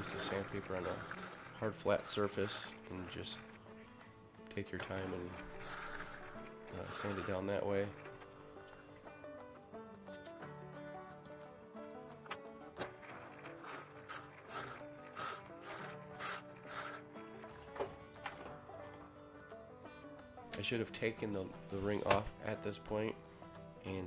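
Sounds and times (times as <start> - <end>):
quiet instrumental music: 0.0 - 24.0.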